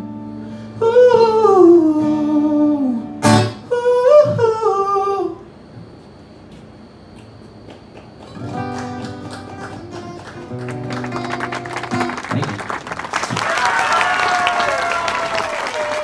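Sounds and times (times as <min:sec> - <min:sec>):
acoustic guitar chords: 0:00.0 - 0:06.0, 0:07.2 - 0:13.3
audience applause and cheering: 0:08.5 - 0:16.0.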